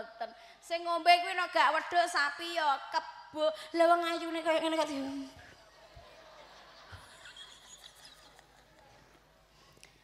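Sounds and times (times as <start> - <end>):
faint woman laughing: 6.1 - 9.0.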